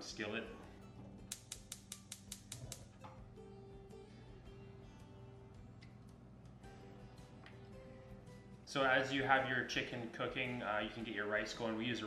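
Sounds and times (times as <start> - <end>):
faint guitar music: 0.0 - 1.4, 2.8 - 12.0
gas stove igniter clicking: 1.3 - 3.2.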